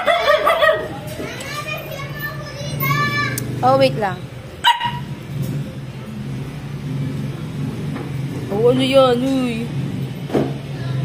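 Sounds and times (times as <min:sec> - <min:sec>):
puppy barking: 0:00.0 - 0:01.0, 0:04.6 - 0:05.2.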